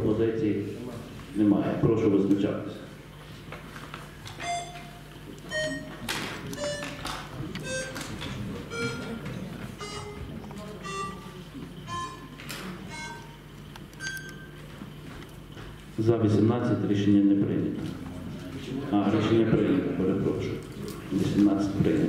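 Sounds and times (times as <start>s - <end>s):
steady low hum: 0.0s - 22.0s
short electronic beeps: 4.4s - 6.0s, 6.6s - 7.0s, 7.6s - 8.0s, 8.7s - 9.2s, 14.0s - 14.6s
faint murmur of voices: 4.8s - 13.6s, 15.9s - 22.0s.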